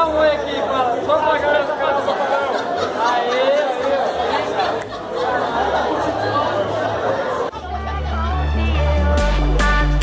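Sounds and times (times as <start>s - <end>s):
lively chatter: 0.0s - 9.6s.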